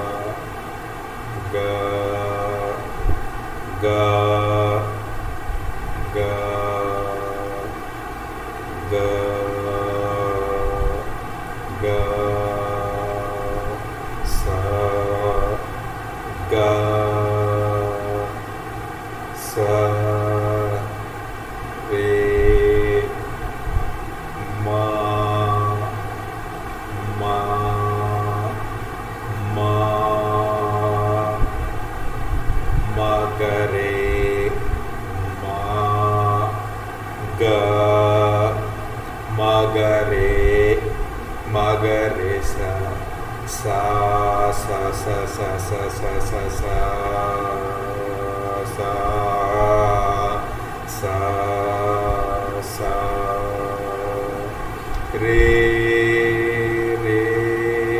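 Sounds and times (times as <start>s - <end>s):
low electrical hum: 0.0s - 57.9s
man singing held notes: 0.0s - 57.9s.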